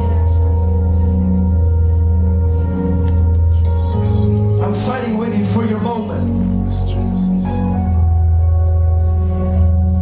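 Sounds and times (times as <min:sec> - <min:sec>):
keyboard pad chord: 0:00.0 - 0:10.0.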